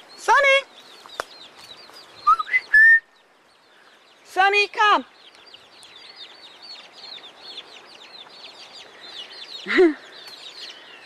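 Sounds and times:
faint bird chirps: 0.0s - 11.0s
person whistling: 2.3s - 3.0s.

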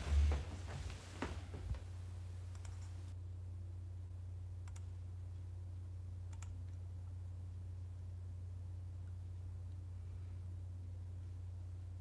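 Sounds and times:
steady low hum: 0.0s - 12.0s
faint clicks: 2.5s - 3.0s, 6.3s - 6.8s.

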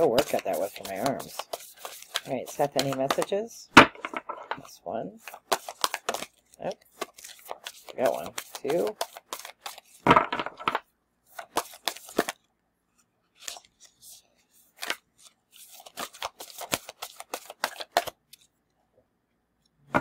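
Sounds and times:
cards being shuffled: 0.0s - 3.4s, 4.0s - 12.5s, 13.3s - 18.5s.

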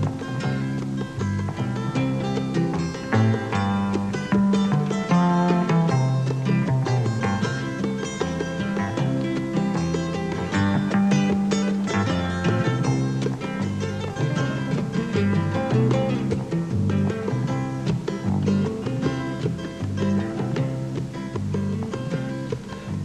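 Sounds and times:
acoustic guitars picking: 0.0s - 23.0s
bongos: 0.0s - 23.0s
double bass walking: 0.0s - 23.0s.

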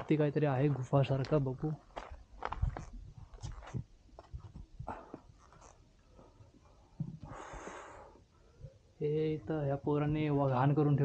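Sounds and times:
footsteps on rock: 0.0s - 5.8s
person breathing heavily: 7.2s - 8.9s.

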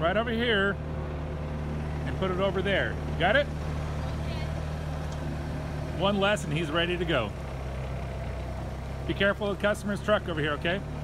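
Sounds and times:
forklift engine idling: 0.0s - 11.0s.

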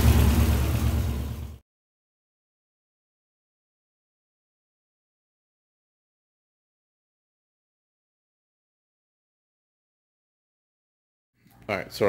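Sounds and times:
car engine idling: 0.0s - 1.6s.

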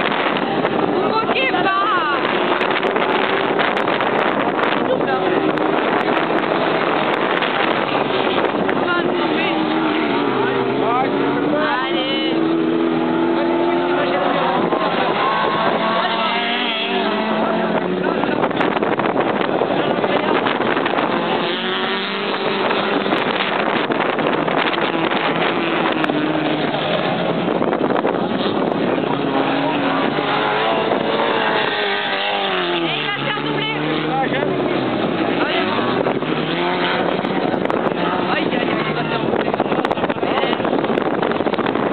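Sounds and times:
race car engines revving: 0.0s - 41.9s.

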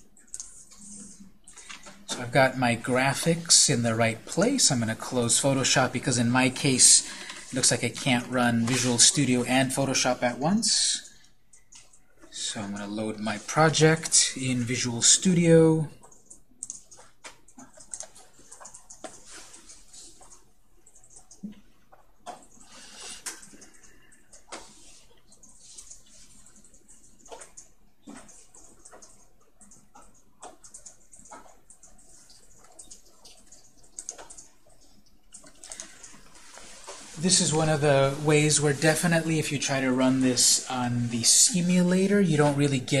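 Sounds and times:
soft clicks and rustles: 0.0s - 9.2s, 16.0s - 43.0s.

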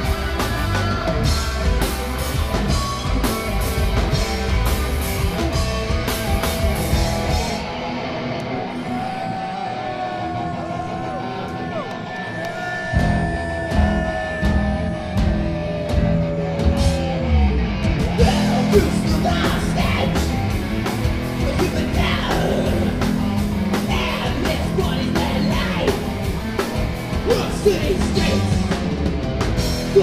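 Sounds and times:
thrash metal band playing live: 0.0s - 11.8s, 12.6s - 30.0s.

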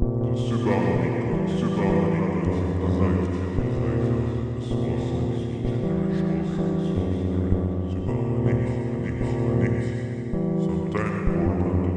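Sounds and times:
synthesizer drone: 0.0s - 11.9s
chopped voice sample: 0.2s - 11.9s.

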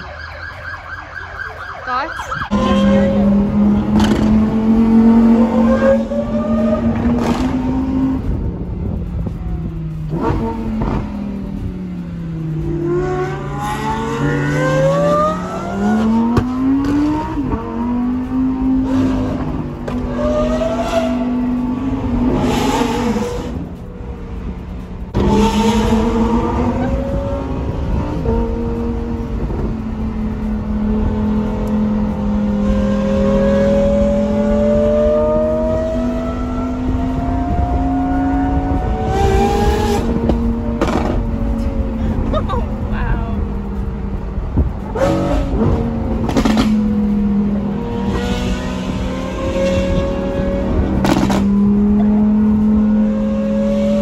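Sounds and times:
car engine revving from cabin: 44.9s - 54.0s.

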